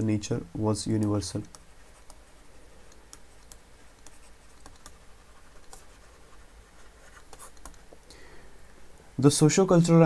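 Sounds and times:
stylus scratching on tablet: 0:01.0 - 0:07.9.

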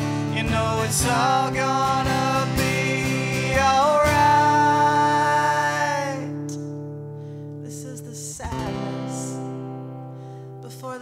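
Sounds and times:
acoustic guitar strumming: 0:00.0 - 0:11.0
woman singing: 0:07.6 - 0:09.6, 0:10.6 - 0:11.0.

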